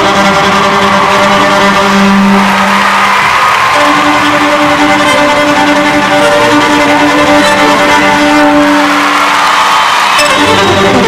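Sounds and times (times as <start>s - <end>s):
electric violin playing: 0.0s - 11.0s.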